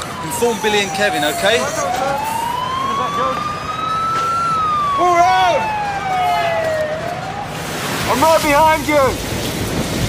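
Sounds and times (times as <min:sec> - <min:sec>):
siren wailing: 0:00.0 - 0:07.8.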